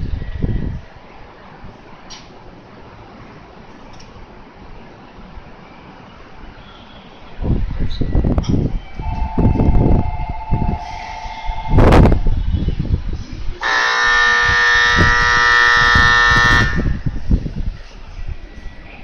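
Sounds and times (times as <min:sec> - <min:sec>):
wind rumble on microphone: 0:00.0 - 0:01.9, 0:07.3 - 0:19.0
train horn blast: 0:09.0 - 0:12.7, 0:13.6 - 0:17.1.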